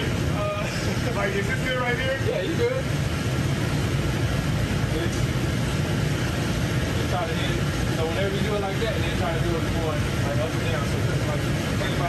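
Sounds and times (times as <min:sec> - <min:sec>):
spray booth air drone: 0:00.0 - 0:12.0.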